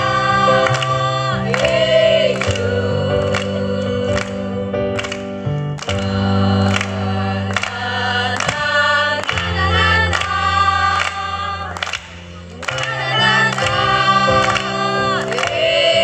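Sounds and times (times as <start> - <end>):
women's group singing: 0.0 - 5.0, 5.9 - 16.0
keyboard accompaniment: 0.0 - 16.0
hand claps: 0.6 - 2.7, 4.1 - 4.4, 5.0 - 10.4, 11.0 - 15.7.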